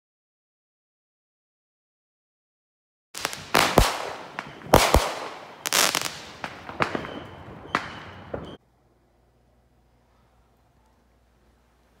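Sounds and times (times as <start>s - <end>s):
fireworks bangs and crackling: 3.2s - 8.6s.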